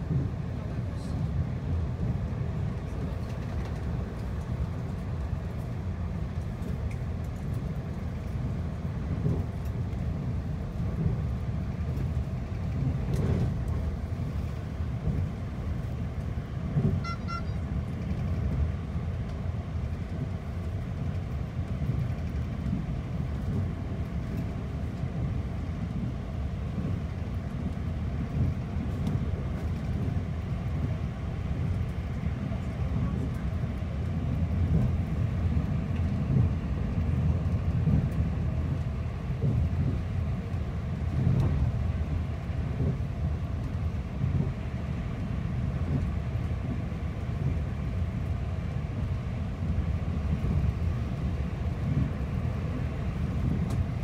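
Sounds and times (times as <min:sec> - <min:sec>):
train cabin low rumble: 0:00.0 - 0:54.0.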